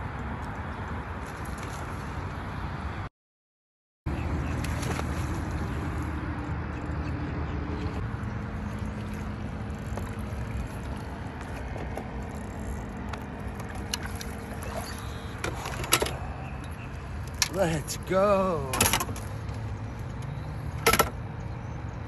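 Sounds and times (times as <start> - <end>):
boat motor humming: 4.1 - 22.0.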